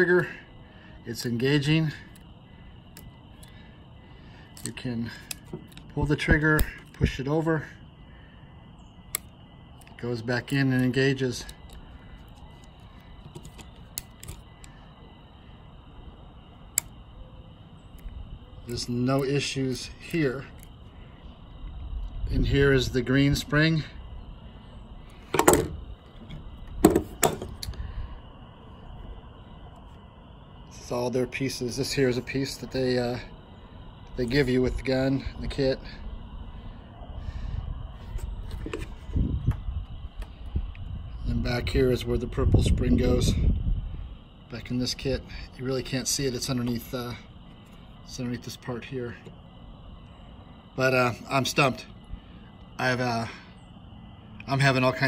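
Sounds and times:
faint steady background noise: 0.0s - 55.0s
pistol parts clicking: 4.5s - 7.0s, 10.8s - 14.7s.

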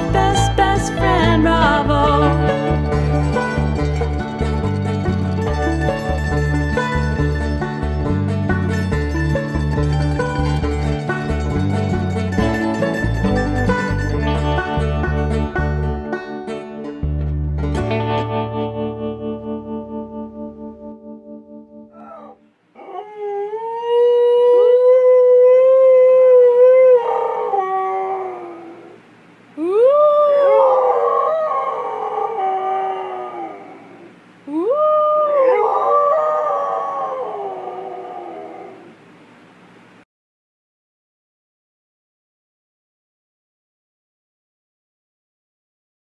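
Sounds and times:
dog howling: 21.9s - 29.0s, 29.6s - 39.0s.

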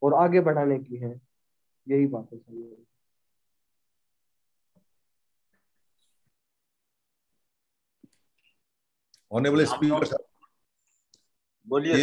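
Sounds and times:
man speaking: 9.2s - 10.4s, 11.6s - 12.0s.

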